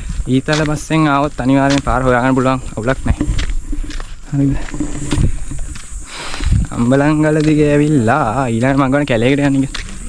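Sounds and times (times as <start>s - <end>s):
wind rumble on microphone: 0.0s - 10.0s
man talking: 0.2s - 3.3s, 4.3s - 4.8s, 6.7s - 9.8s.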